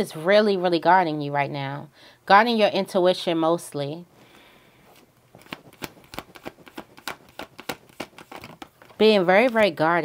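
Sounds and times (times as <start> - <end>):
cards being shuffled: 4.9 - 10.0.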